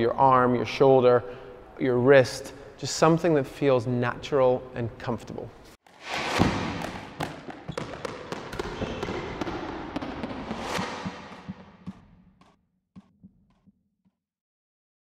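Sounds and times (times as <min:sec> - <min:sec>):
ball bouncing: 0:06.3 - 0:13.8.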